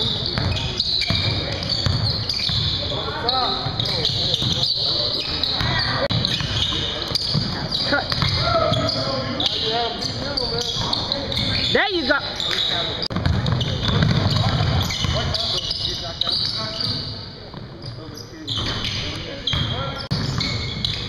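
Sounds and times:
sneakers squeaking: 0.0s - 21.0s
players calling out: 0.1s - 17.1s.

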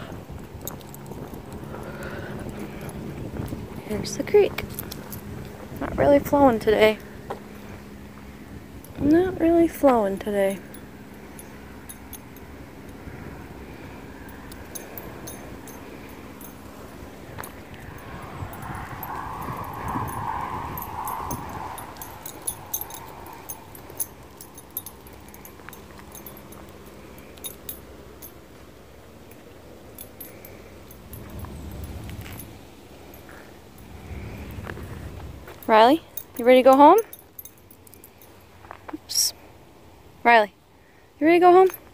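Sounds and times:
dog collar tags jingling: 0.3s - 39.4s, 41.2s - 41.9s
low handling noise: 2.4s - 38.4s.

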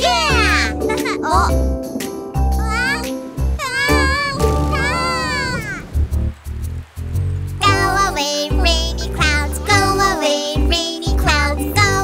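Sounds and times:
children's song music: 0.0s - 6.3s, 7.0s - 12.0s
gliding vocal calls: 3.5s - 8.2s.

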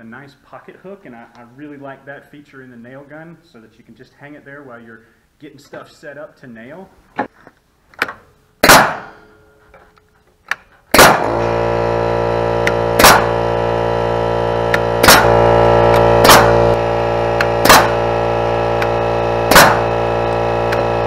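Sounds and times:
nail gun shots: 8.0s - 9.3s, 10.9s - 11.4s, 13.0s - 13.4s, 14.7s - 15.4s, 16.2s - 16.8s, 17.4s - 18.0s, 18.8s - 20.0s.

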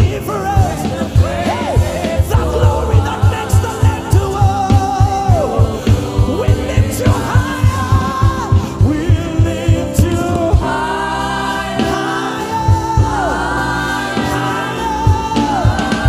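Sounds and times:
man singing lead: 0.0s - 11.0s, 11.8s - 13.6s, 14.2s - 16.0s
steady drum beat: 0.0s - 16.0s
women's backing vocals: 0.0s - 16.0s.

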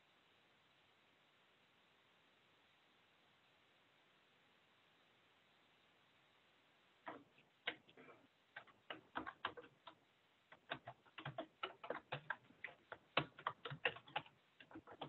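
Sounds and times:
keyboard typing clicks: 7.1s - 15.0s.

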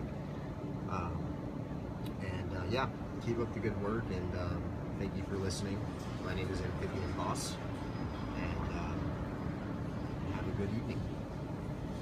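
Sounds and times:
distant street traffic rumble: 0.0s - 12.0s.

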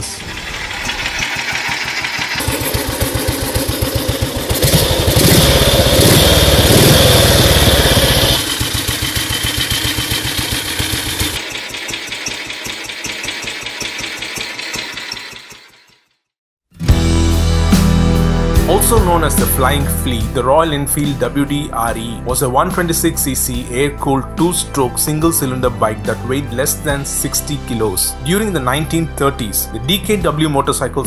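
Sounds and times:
single-cylinder engine running: 0.0s - 16.0s.

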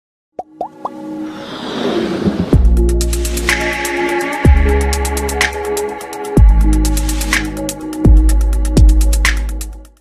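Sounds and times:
cartoon plop blips: 0.4s - 1.0s.

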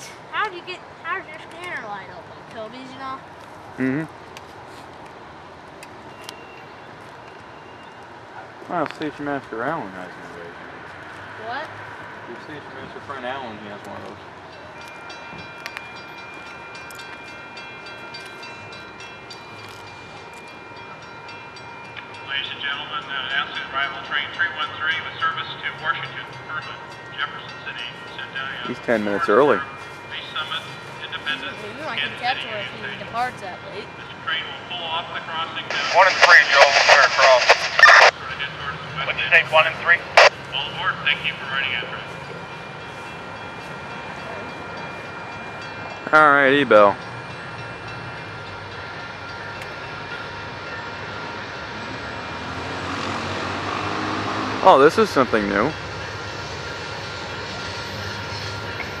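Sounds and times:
diesel locomotive engine approaching: 0.0s - 59.0s
man's voice through loudspeaker: 22.3s - 33.1s, 34.0s - 42.2s.

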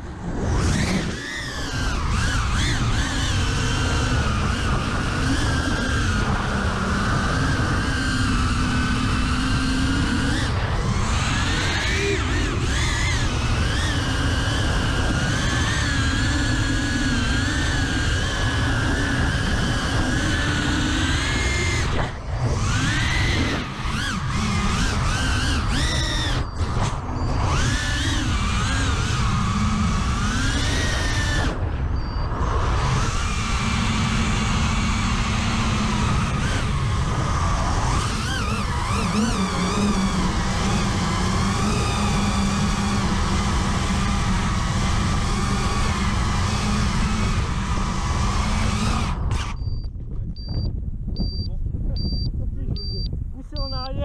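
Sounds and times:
quadcopter motors whining: 0.0s - 54.0s.

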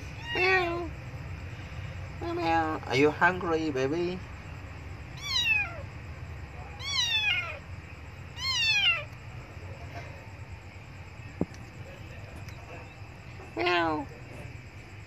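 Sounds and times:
kitten meowing: 0.1s - 0.9s, 5.2s - 5.8s, 6.7s - 7.6s, 8.3s - 9.1s.

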